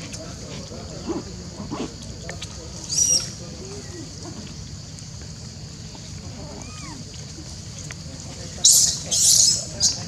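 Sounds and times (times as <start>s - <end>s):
macaque monkey calls: 2.9s - 3.4s, 6.4s - 7.0s, 8.6s - 10.0s.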